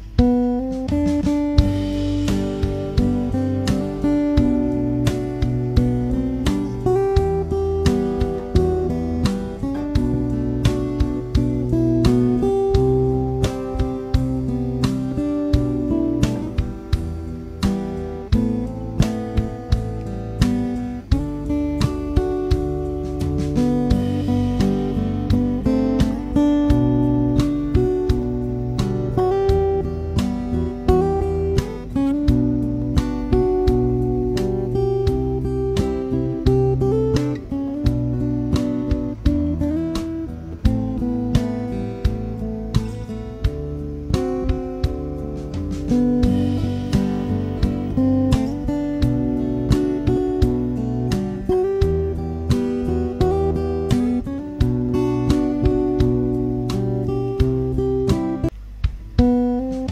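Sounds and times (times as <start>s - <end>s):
acoustic guitar music with beat: 0.0s - 59.9s.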